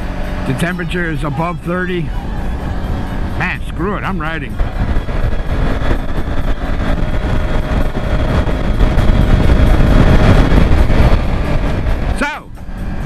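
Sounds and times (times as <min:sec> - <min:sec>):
motorcycle engine running: 0:00.0 - 0:13.0
wind rushing over microphone: 0:00.0 - 0:13.0.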